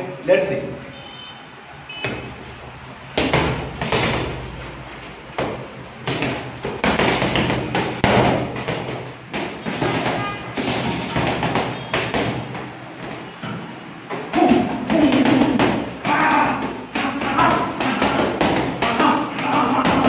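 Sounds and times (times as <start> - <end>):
gloves punching heavy bag: 3.2 - 12.6, 14.4 - 20.0.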